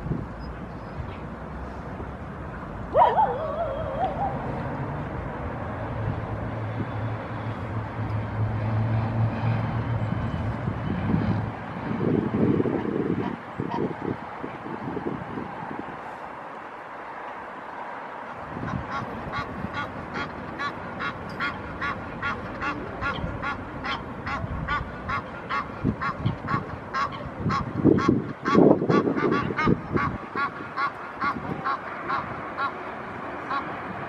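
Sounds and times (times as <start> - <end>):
goose honking: 18.7 - 32.8, 33.5 - 33.7.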